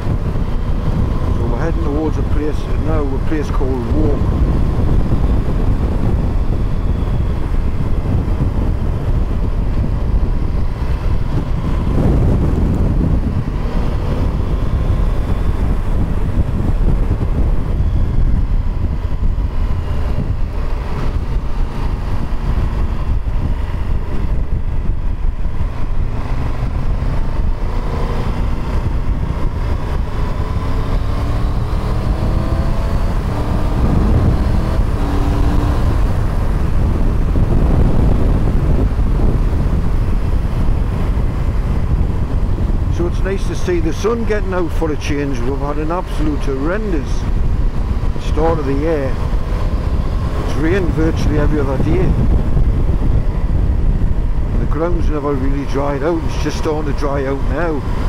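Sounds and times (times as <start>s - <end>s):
motorcycle engine running: 0.0s - 58.0s
wind buffeting microphone: 0.0s - 58.0s.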